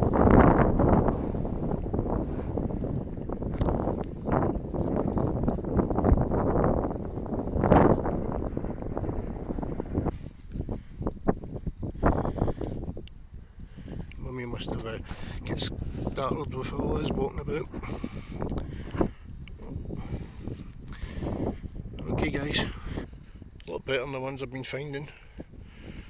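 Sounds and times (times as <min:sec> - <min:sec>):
wind buffeting microphone: 0:00.0 - 0:26.0
footsteps crunching through stubble: 0:00.8 - 0:15.8.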